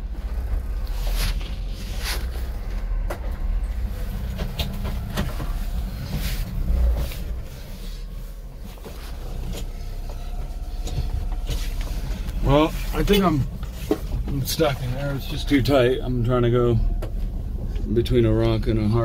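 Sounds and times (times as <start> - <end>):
small truck engine running: 0.0 - 19.0.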